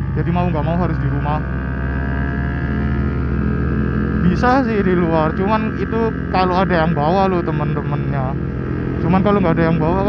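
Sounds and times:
motorcycle engine droning: 0.0s - 10.0s.

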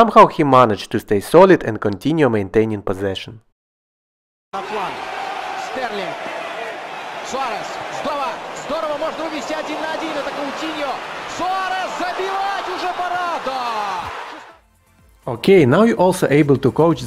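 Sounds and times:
commentator speaking: 4.6s - 5.0s, 5.6s - 6.2s, 7.2s - 14.5s
stadium crowd noise: 4.6s - 14.6s.

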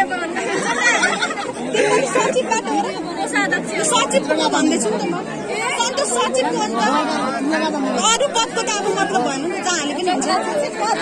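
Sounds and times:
people talking over one another: 0.0s - 11.0s.

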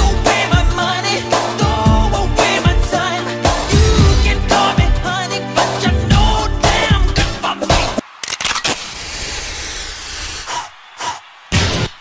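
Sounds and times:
hissing noise effect: 8.3s - 10.6s.

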